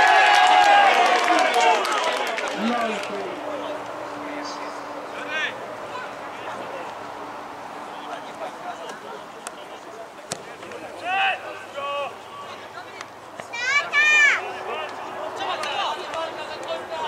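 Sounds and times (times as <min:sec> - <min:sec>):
players shouting: 0:00.0 - 0:03.9, 0:08.0 - 0:17.0
outdoor background noise: 0:00.0 - 0:17.0.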